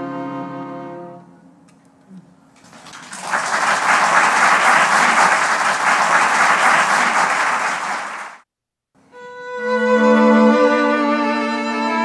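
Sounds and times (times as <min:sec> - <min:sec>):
audience applauding: 0:02.6 - 0:08.4.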